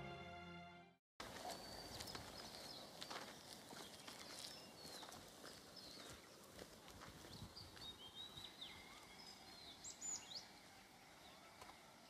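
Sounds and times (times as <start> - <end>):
footsteps through tall grass: 1.2 - 9.7.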